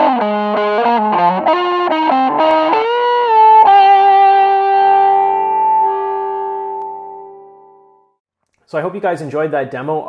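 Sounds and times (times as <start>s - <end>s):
overdriven electric guitar note: 0.0s - 8.2s.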